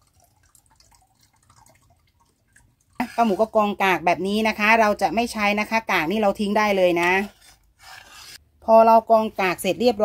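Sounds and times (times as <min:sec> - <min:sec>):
liquid dripping: 0:00.0 - 0:03.2.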